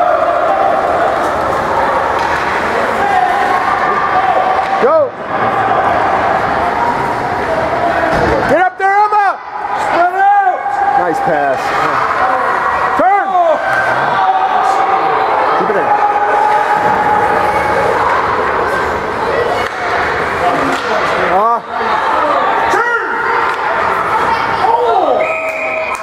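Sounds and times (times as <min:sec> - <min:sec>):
spectators shouting and cheering: 0:00.0 - 0:26.0.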